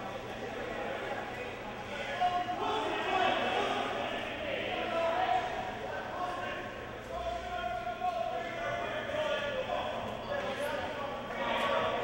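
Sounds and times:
echoing indistinct voices: 0.0s - 12.0s.

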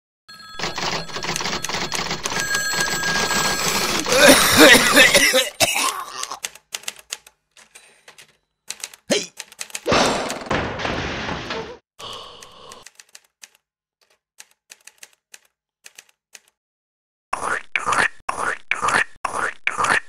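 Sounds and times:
typing on keyboards: 0.6s - 4.3s, 6.2s - 9.9s, 12.1s - 16.6s
person coughing: 3.9s - 6.4s, 9.1s - 9.4s.

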